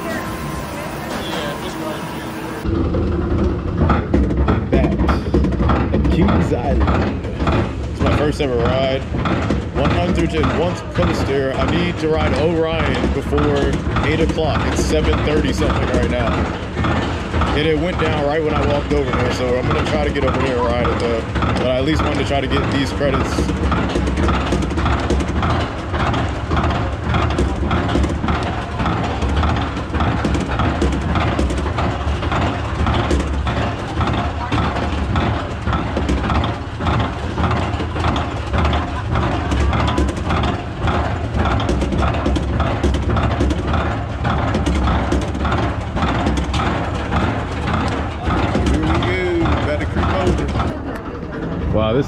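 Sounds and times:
low mechanical rumble: 0.0 - 52.0
roller coaster chain lift clacking: 0.0 - 52.0.

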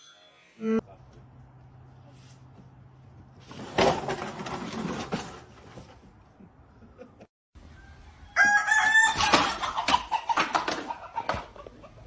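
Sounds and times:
rooster crowing: 7.6 - 9.6.

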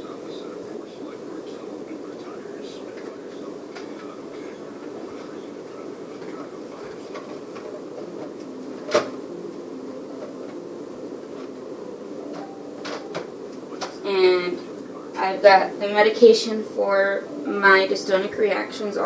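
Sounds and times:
low room hum: 0.0 - 19.0.

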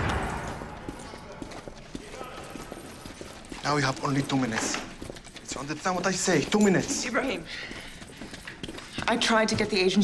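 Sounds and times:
footsteps on hard floor: 0.0 - 10.0.

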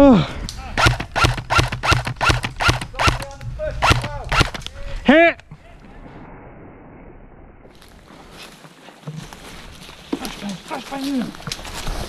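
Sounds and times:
airsoft rifle shots: 0.8 - 4.6.

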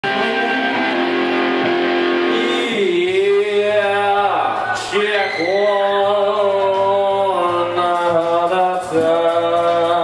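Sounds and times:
live rock band with amplified guitars: 0.0 - 10.0.

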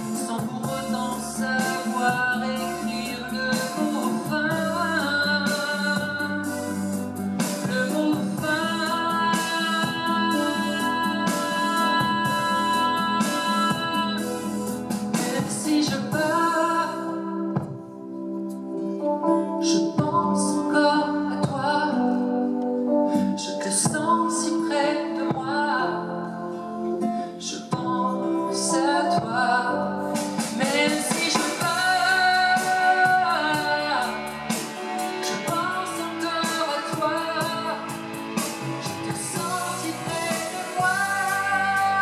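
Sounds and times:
man singing a ballad: 0.0 - 17.6, 19.6 - 42.0
instrumental accompaniment: 0.0 - 42.0.

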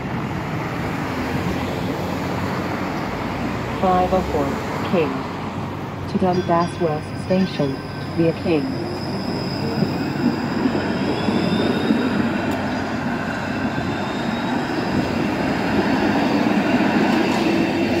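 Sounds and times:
streetcar wheels rumbling on rails: 0.0 - 18.0.

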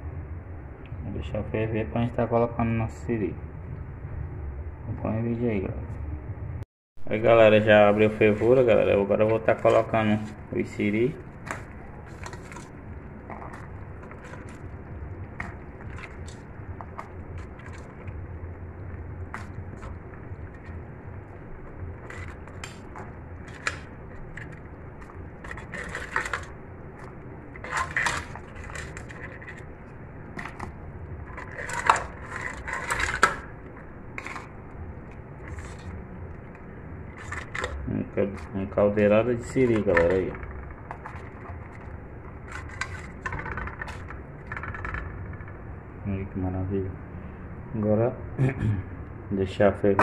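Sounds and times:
broth boiling: 7.1 - 46.0
crab shells clattering in pot: 10.9 - 18.2, 22.0 - 33.5, 37.1 - 37.8, 39.5 - 45.3.

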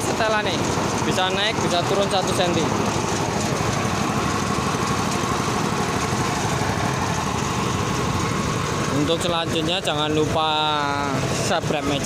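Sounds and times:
rice thresher running: 0.0 - 12.0.

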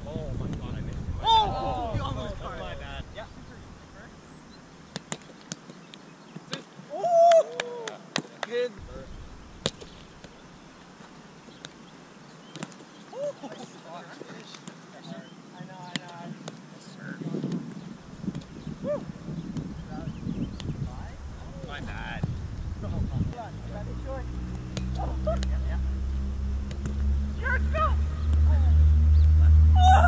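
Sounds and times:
wind rumbling on microphone: 0.0 - 4.6, 8.8 - 10.8, 17.0 - 30.0
person shouting: 1.2 - 2.0, 6.9 - 7.9, 27.4 - 28.1, 29.7 - 30.0
hands slapping a ball: 4.9 - 5.7, 26.7 - 27.0
ball bouncing off a net: 9.6 - 10.4, 24.5 - 25.6.

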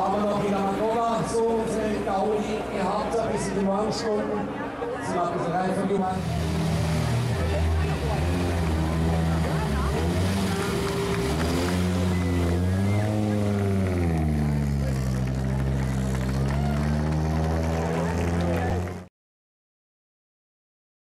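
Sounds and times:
car engine at low revs: 6.2 - 19.1.

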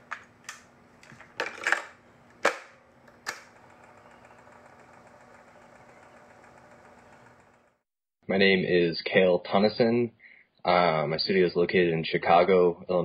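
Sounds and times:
tape deck mechanical clicks: 1.4 - 7.6.

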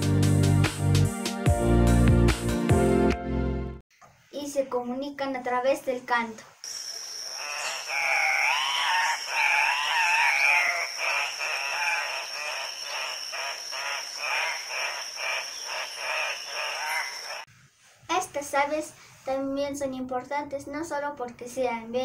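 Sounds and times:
bird calls: 6.7 - 17.5.

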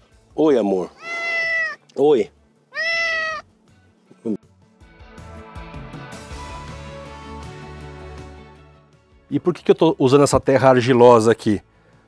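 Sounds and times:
background music: 0.0 - 12.0
cat meowing: 0.9 - 1.9, 2.7 - 3.5.

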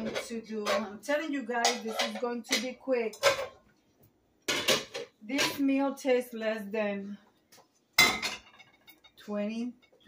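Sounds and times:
metallic clanks of pots: 0.0 - 1.0, 1.6 - 3.6, 4.5 - 5.7, 8.0 - 9.2.

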